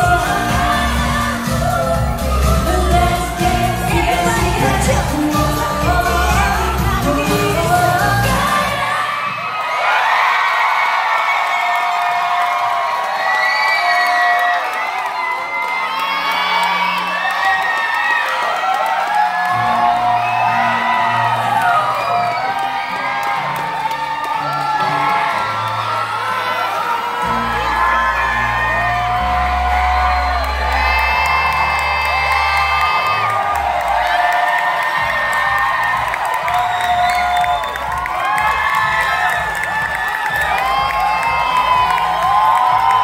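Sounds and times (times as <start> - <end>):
live pop music with singing: 0.0 - 9.7, 19.4 - 43.0
audience cheering and whooping: 0.0 - 43.0.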